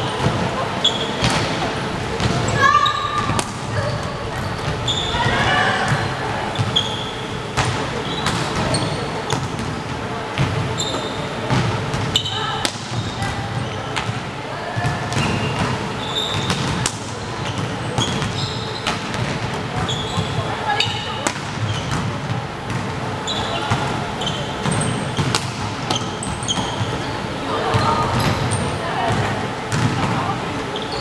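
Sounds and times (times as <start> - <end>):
sneaker squeaks on wooden floor: 0.0 - 1.5, 2.2 - 9.6, 10.4 - 14.2, 14.9 - 28.8, 30.7 - 31.0
voices echoing in a hall: 0.0 - 31.0.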